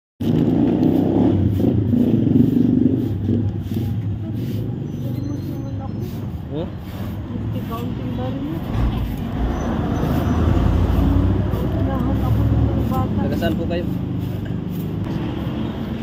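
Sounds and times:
roadside traffic hum: 0.2s - 16.0s
vehicle engine rumbling: 0.2s - 16.0s.

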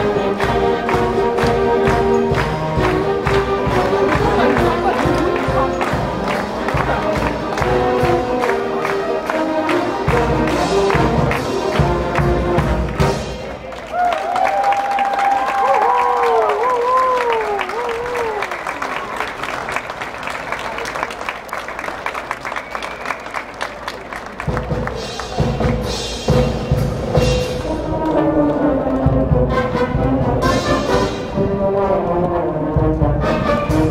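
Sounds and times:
concert band playing: 0.0s - 13.8s, 24.0s - 33.9s
audience applause: 0.0s - 26.1s
audience cheering: 13.6s - 25.6s.

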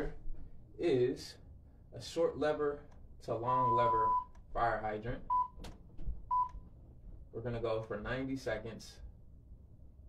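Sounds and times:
short electronic beeps: 6.3s - 6.6s.

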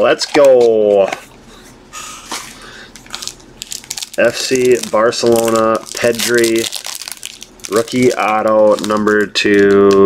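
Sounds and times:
foil wrapper tearing: 3.0s - 10.0s
wrapper crinkling and rustling: 3.0s - 10.0s.

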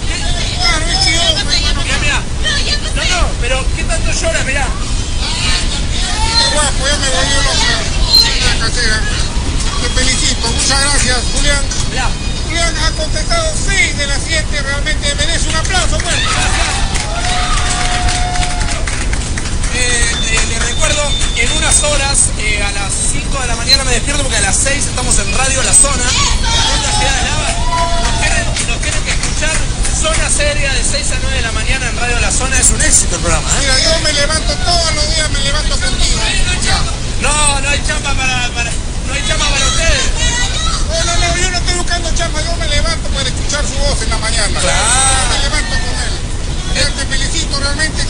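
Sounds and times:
background speech babble: 0.0s - 48.0s
people talking animatedly: 0.0s - 48.0s.

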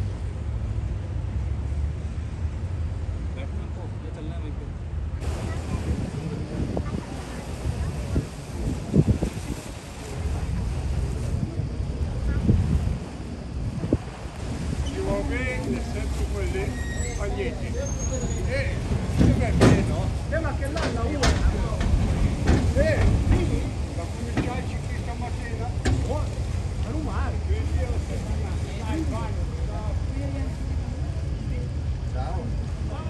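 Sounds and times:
boat engine rumble: 0.0s - 33.0s
people talking: 3.3s - 13.9s, 14.5s - 33.0s
wind on microphone: 5.2s - 17.6s.

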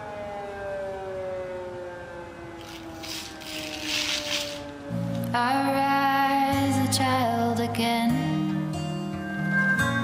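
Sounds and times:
air-raid siren winding down: 0.0s - 5.4s
rustling noise: 2.6s - 5.3s.

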